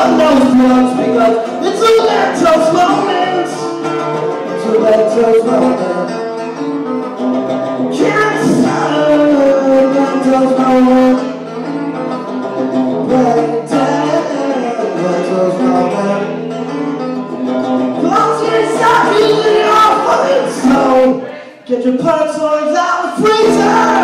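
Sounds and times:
electric guitar strummed chords: 23.4 - 24.0.

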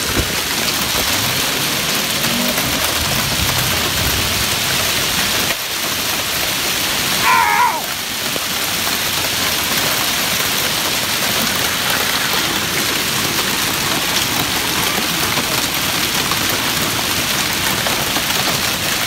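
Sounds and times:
hail and heavy rain pelting: 0.0 - 19.0.

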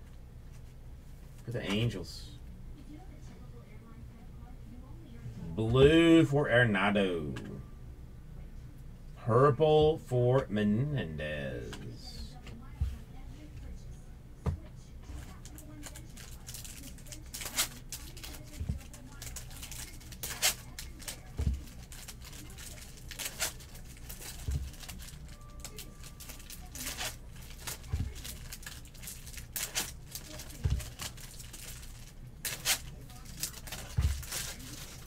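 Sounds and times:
card wrappers tearing and crinkling: 15.4 - 35.0.

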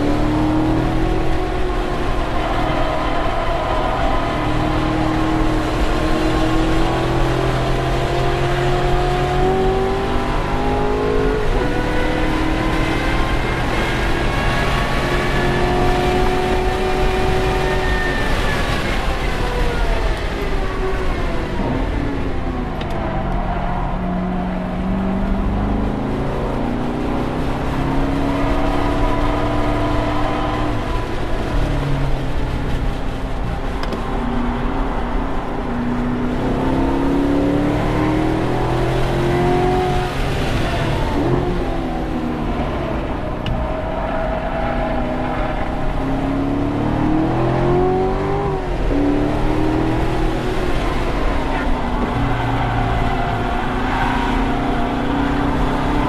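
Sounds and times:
car engine accelerating: 0.0 - 56.0.

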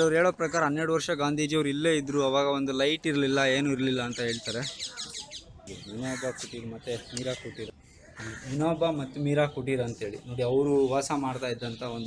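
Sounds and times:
bird calling: 3.7 - 12.0
people talking: 5.7 - 12.0.

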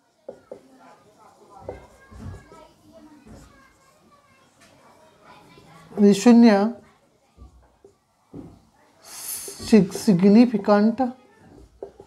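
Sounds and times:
children chattering: 0.0 - 12.0.

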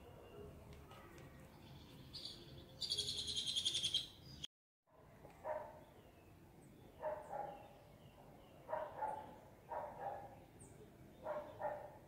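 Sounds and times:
bird calling with trill: 2.1 - 4.5.

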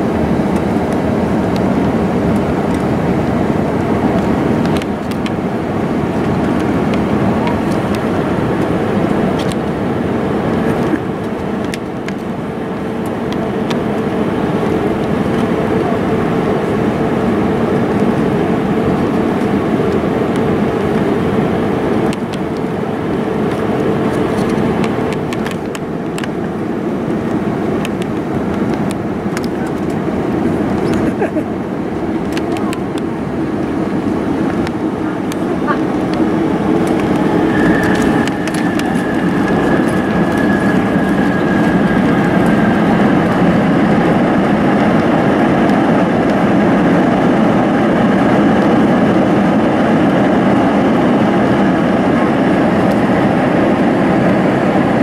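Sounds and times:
airliner cabin engine roar: 0.0 - 55.0
steady hum: 0.0 - 55.0.

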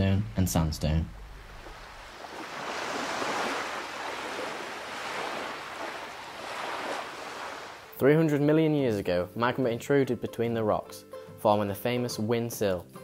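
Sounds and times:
sea waves washing in: 0.4 - 8.0.

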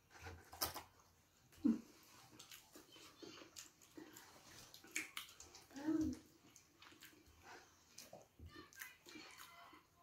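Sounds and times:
wet eating sounds: 0.0 - 10.0.

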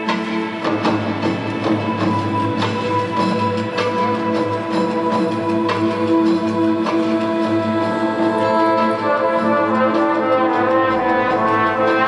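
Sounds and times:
brass sustained chords: 6.4 - 12.0
marching band playing: 8.2 - 12.0.

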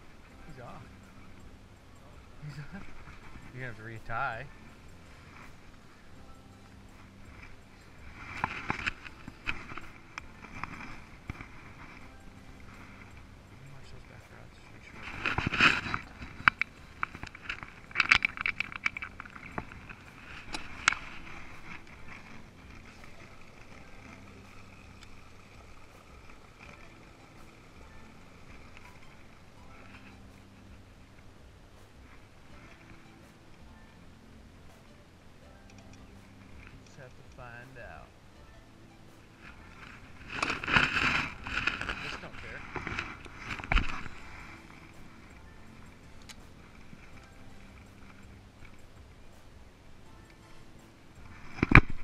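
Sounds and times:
faint steady whine: 0.0 - 52.0.

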